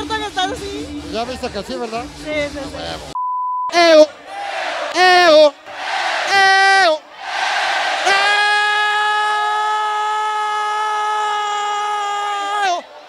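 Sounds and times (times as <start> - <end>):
man shouting into microphone: 3.7 - 4.2, 4.9 - 5.6, 6.2 - 7.0, 8.0 - 12.9
crowd cheering: 3.9 - 13.0.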